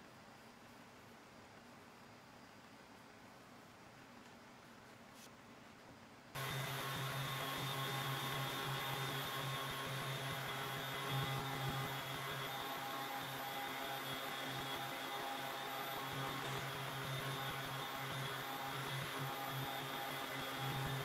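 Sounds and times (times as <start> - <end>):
orbital sander motor hum: 6.4 - 21.0.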